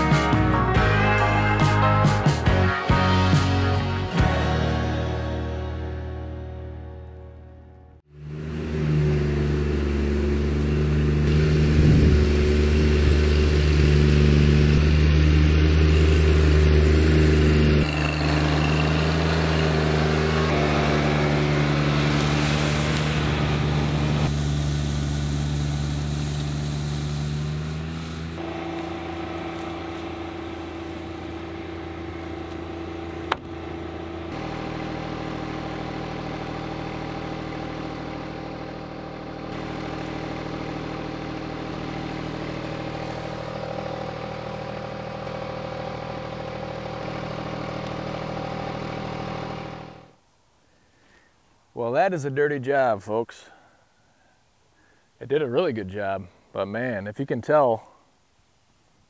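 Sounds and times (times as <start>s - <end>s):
tractor diesel engine running: 8.0s - 50.2s.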